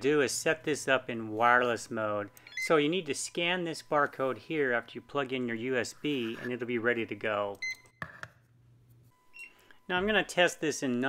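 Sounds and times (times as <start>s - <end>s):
barcode scanner beeps: 2.3s - 2.8s.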